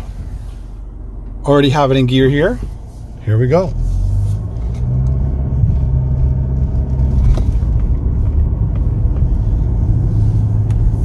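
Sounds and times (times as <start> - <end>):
car engine humming: 0.0 - 11.0
road rumble: 0.0 - 11.0.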